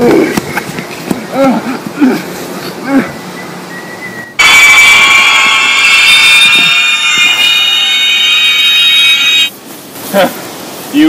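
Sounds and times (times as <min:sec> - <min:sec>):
high electronic alarm tone: 0:04.4 - 0:09.5.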